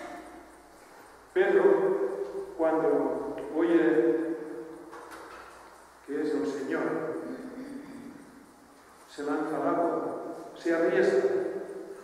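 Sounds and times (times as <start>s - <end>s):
man speaking: 1.3s - 4.6s, 6.0s - 8.3s, 9.1s - 11.6s.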